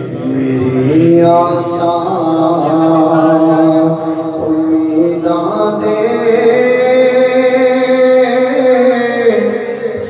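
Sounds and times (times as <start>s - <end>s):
man singing into a microphone: 0.0s - 10.0s.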